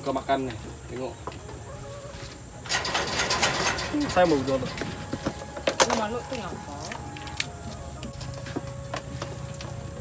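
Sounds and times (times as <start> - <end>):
utensils rattling in plastic basin: 2.7 - 4.8.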